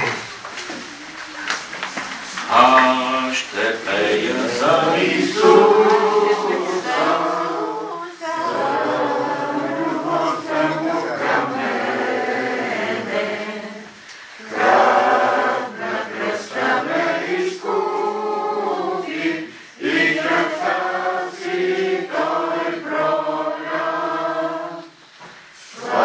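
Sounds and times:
congregation singing: 0:02.0 - 0:26.0.

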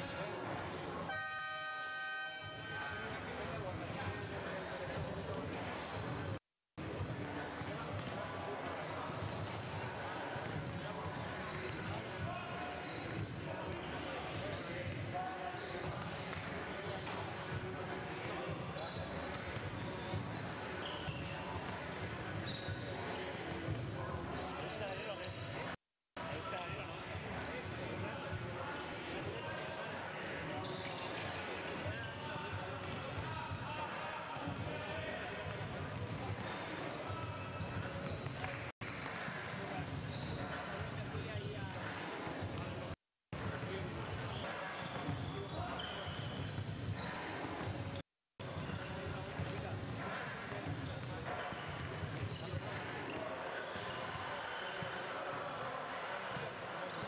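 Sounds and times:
echoing hubbub of voices: 0:00.0 - 0:57.0.

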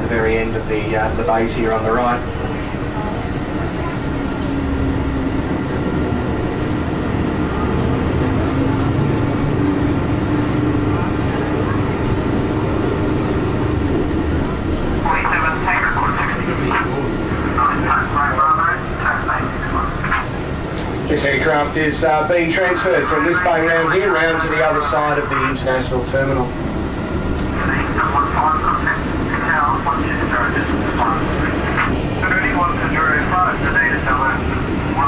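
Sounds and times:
bus engine rumble: 0:00.0 - 0:35.0
voices: 0:00.0 - 0:35.0.

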